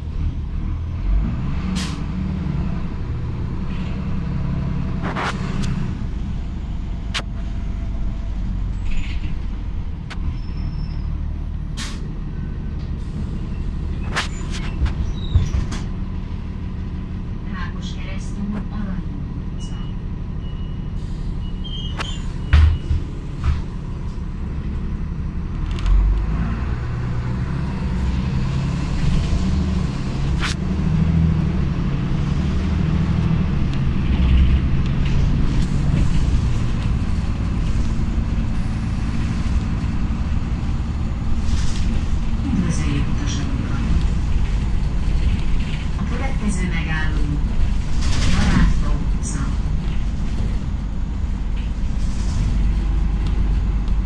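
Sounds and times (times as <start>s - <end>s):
bus engine and road rumble: 0.0s - 54.0s.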